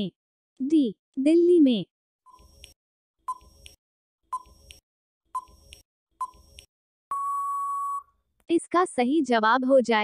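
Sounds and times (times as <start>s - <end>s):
long steady beep: 7.1s - 8.1s.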